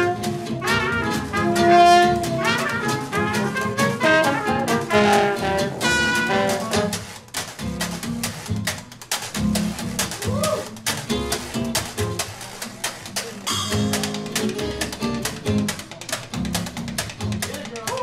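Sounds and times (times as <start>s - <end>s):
upright bass: 0.0s - 12.4s, 13.1s - 18.0s
acoustic guitar: 0.0s - 18.0s
washboard clicking and scraping: 5.8s - 18.0s.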